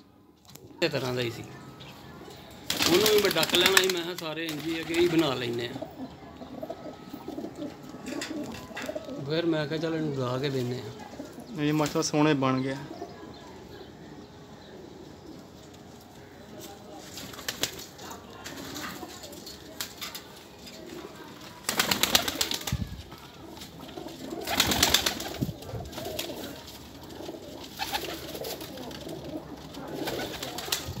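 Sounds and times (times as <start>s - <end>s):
wings fluttering: 2.6s - 5.6s, 17.0s - 31.0s
pigeons cooing: 4.5s - 15.9s, 16.7s - 31.0s.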